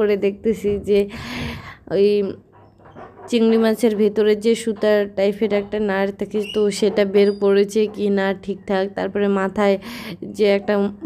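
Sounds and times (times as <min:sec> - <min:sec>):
woman's voice: 0:00.0 - 0:02.5, 0:03.3 - 0:11.0.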